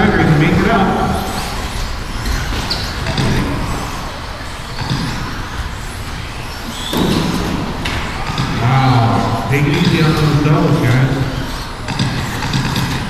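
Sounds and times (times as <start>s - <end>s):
rc car motors whining: 0.0s - 13.0s
background voices: 8.2s - 11.8s.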